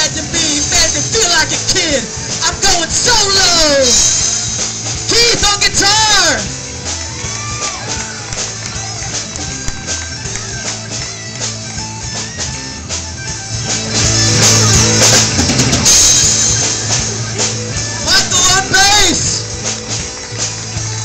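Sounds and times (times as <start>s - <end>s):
bass guitar: 0.0s - 21.0s
drums: 0.0s - 21.0s
electric guitar solo: 5.6s - 21.0s.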